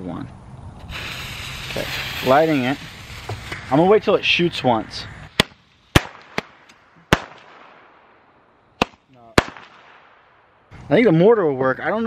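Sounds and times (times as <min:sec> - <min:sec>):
hiss of burning: 0:00.7 - 0:06.4.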